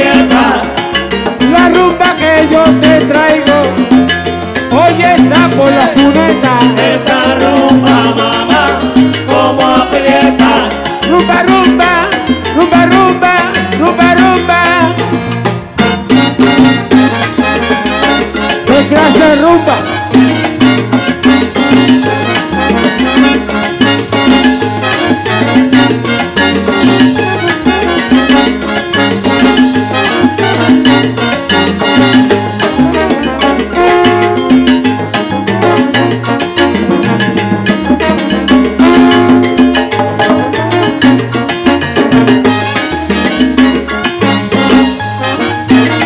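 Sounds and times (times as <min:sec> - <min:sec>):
salsa band playing: 0:00.0 - 0:46.0.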